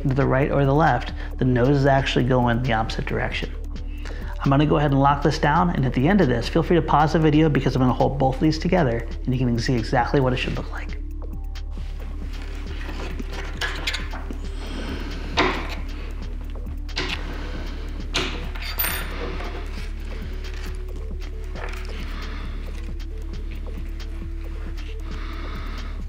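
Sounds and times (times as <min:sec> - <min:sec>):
soft background music: 0:00.0 - 0:26.0.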